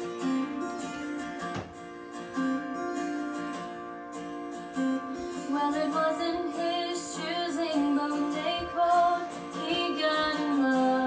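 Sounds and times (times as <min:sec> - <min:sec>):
acoustic guitar over speaker: 0:00.0 - 0:11.0.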